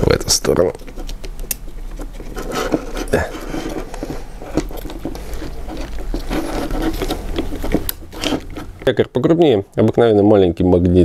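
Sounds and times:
plastic parts clicking and scraping: 0.0 - 8.9.

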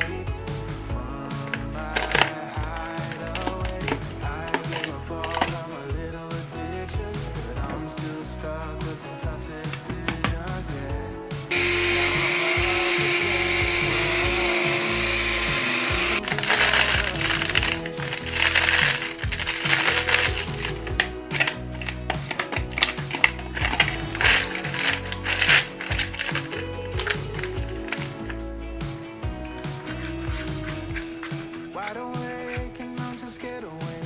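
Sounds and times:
background music: 0.0 - 34.0
electric power tool running: 11.5 - 28.4
hand sanding wicker: 11.6 - 28.4.

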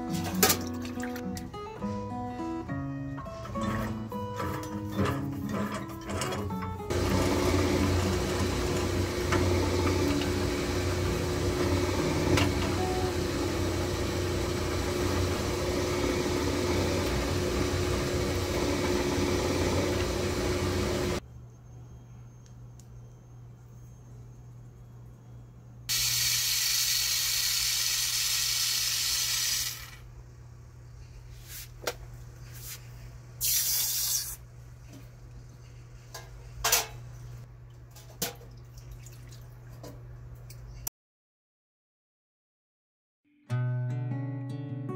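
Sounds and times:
rolling mill running: 3.4 - 21.2
hiss: 25.9 - 30.0, 33.4 - 34.4.

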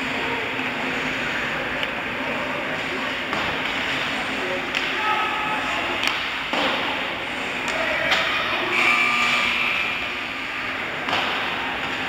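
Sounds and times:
arena noise: 0.0 - 12.0
faint high held tone: 8.5 - 10.1.

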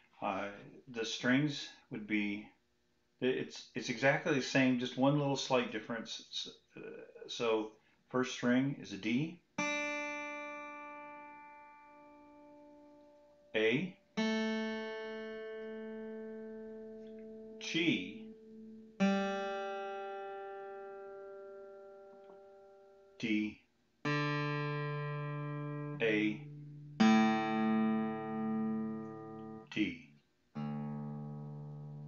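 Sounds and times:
acoustic guitar string ringing: 14.2 - 22.9, 24.1 - 29.7.

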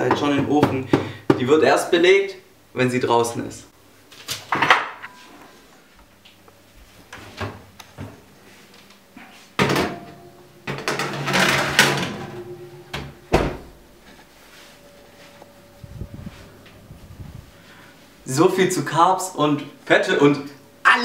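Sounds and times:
oven door shutting: 9.6 - 13.8.

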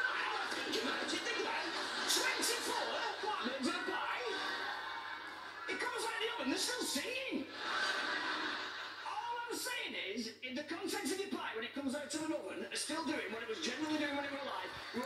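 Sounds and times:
people laughing: 0.0 - 9.4, 13.3 - 15.0.

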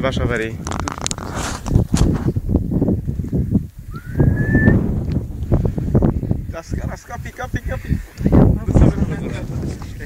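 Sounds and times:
steady low rumble: 3.5 - 6.7
rising whistle: 3.9 - 4.9.

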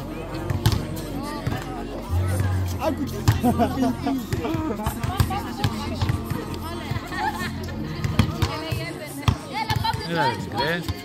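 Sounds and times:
background music: 0.0 - 10.8
voices: 0.0 - 11.0.

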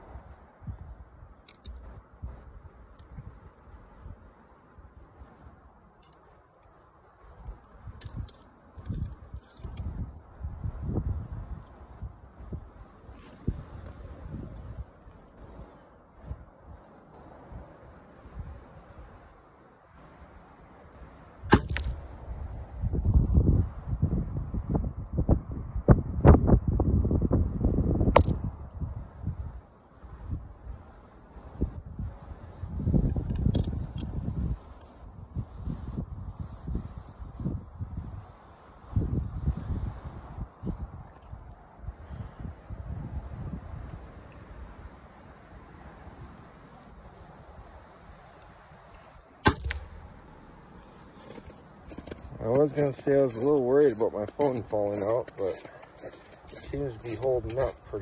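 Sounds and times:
bowstring cracking: 21.5 - 22.0, 49.4 - 50.0.

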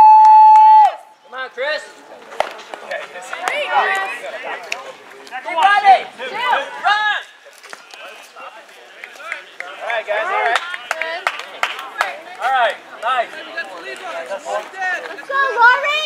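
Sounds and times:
people shouting and calling out: 0.0 - 16.0.

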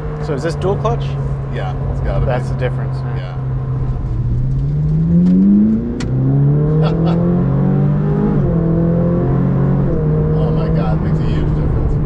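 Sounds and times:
car engine accelerating hard: 0.0 - 12.0.

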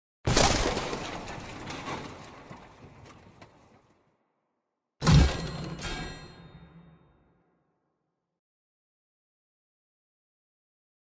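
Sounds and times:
small boxes tumbling: 0.3 - 4.0.

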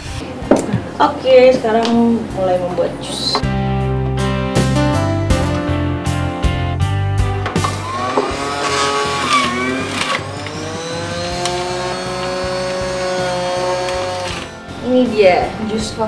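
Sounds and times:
background music: 0.0 - 16.0
electric juicer motor humming: 7.6 - 14.8.

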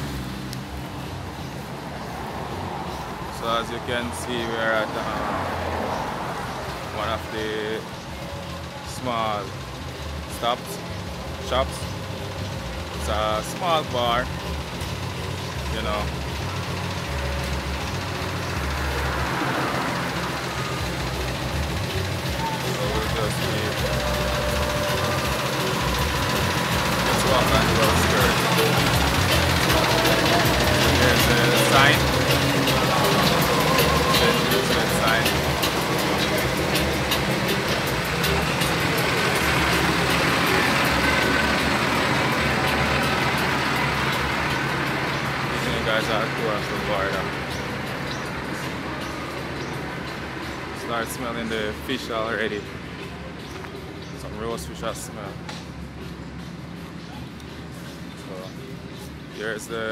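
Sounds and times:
vehicle engine hum: 0.0 - 59.9
indistinct background voices: 0.8 - 55.7.

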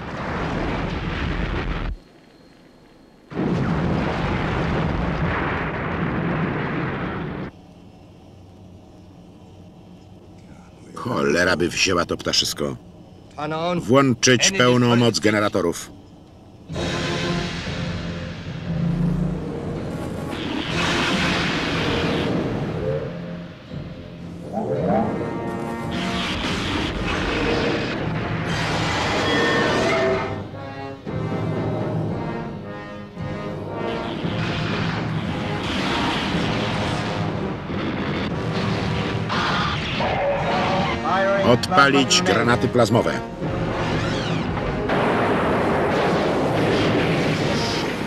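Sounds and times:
booming blast and weapon effects: 3.3 - 7.5, 20.2 - 22.8, 34.0 - 41.0, 43.4 - 48.0
film score music: 7.5 - 48.0.

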